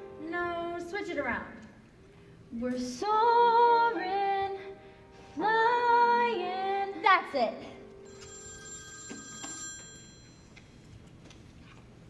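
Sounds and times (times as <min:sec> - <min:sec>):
mobile phone ringtone: 0:08.0 - 0:10.8.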